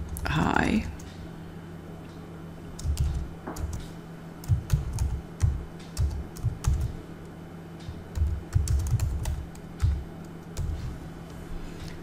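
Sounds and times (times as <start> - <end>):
typing on computer keyboard: 2.8 - 3.8, 4.4 - 7.0, 8.1 - 10.8.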